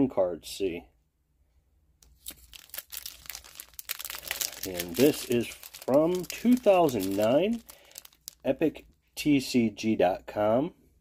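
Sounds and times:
foil wrapper crinkling: 2.0s - 8.6s.

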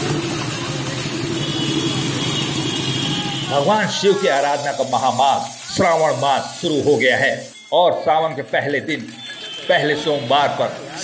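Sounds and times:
motorcycle engines running: 0.0s - 6.7s
thin high tone: 3.1s - 10.5s.

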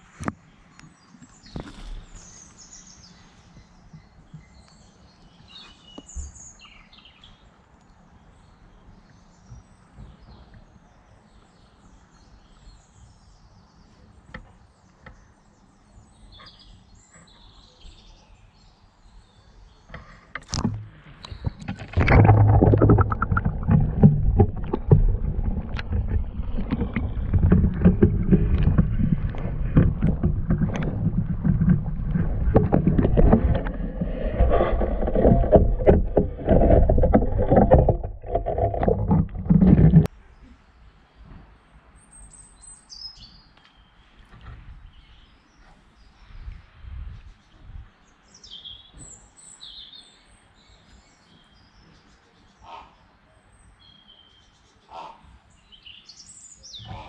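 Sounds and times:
water splashing and sloshing: 20.4s - 40.1s.

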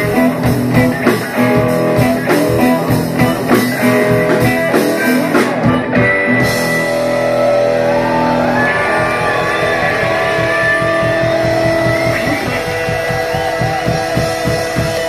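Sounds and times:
electric guitar sustained notes: 0.0s - 15.0s.

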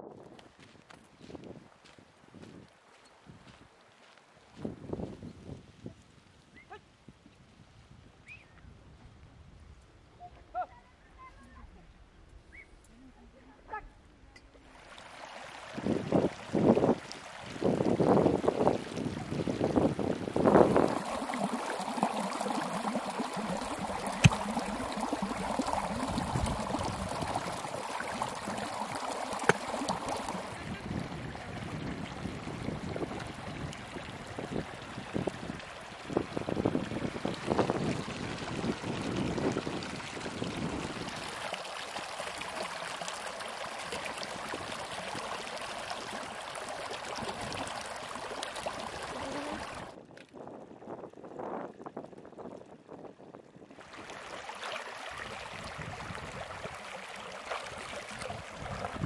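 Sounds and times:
stream running over stones: 14.4s - 53.0s, 53.7s - 59.0s.

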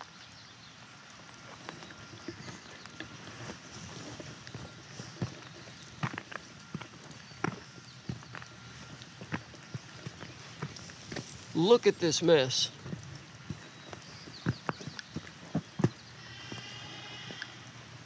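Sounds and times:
footsteps on wet asphalt: 0.0s - 18.0s.

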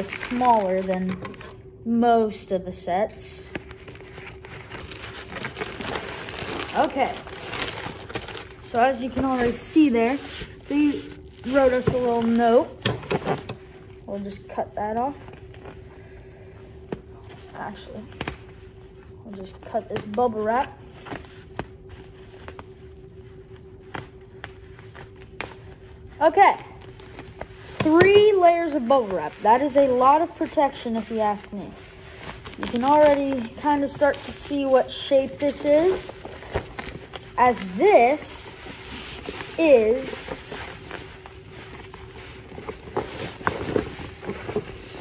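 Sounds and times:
scissors cutting plastic bag: 0.0s - 1.5s, 3.6s - 12.6s, 32.4s - 37.8s
plastic crinkling and rustling: 0.0s - 1.6s, 3.5s - 15.9s, 16.8s - 45.0s
faint steady hum: 0.0s - 45.0s.

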